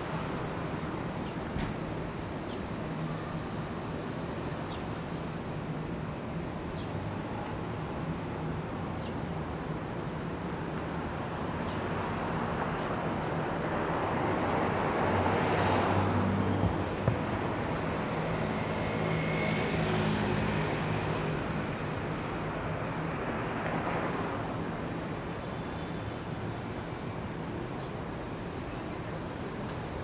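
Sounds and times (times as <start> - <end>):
cars passing: 12.0 - 22.2.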